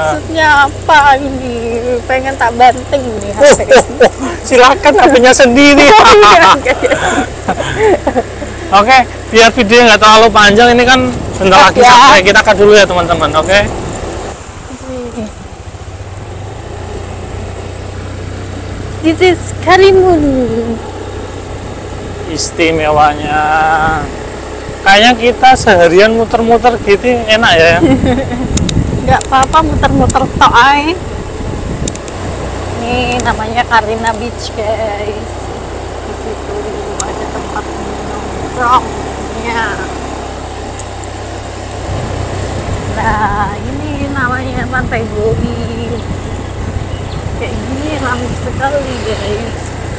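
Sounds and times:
vehicle engine running: 0.0 - 49.9
wind rushing on microphone: 25.6 - 34.2, 40.1 - 49.9.

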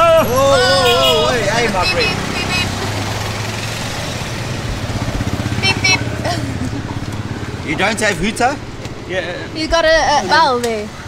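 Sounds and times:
motorcycle engine idling: 0.0 - 10.0
street traffic: 0.0 - 11.0.

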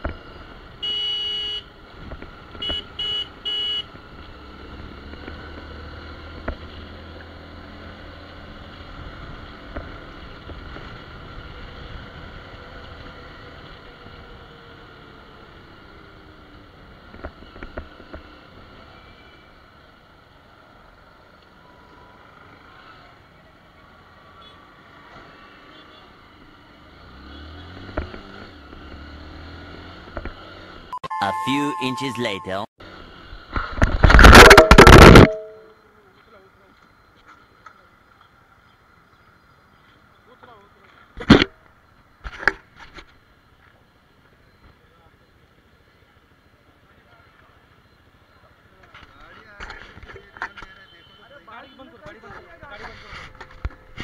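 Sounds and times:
road and wind noise: 0.0 - 54.0
vehicle horn: 0.8 - 1.7, 2.6 - 3.9.

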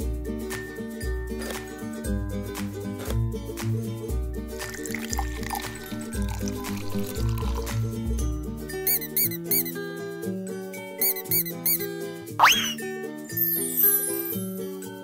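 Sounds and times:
cheerful children's music: 0.0 - 10.1, 10.9 - 15.0
liquid pouring into container: 4.6 - 8.0
rubber duck squeaking: 8.9 - 9.8, 11.0 - 12.8, 13.4 - 14.4
rising whistle: 11.0 - 14.4.

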